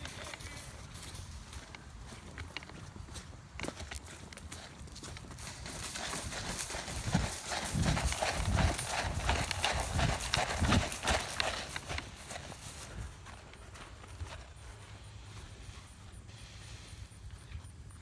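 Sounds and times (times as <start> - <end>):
grass and clothing rustling: 0.0 - 18.0
running footsteps on grass: 0.0 - 18.0.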